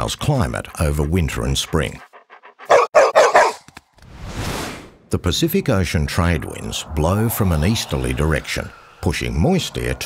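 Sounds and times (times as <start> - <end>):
dog barking: 2.6 - 3.7
whoosh: 4.0 - 5.2, 6.1 - 10.0.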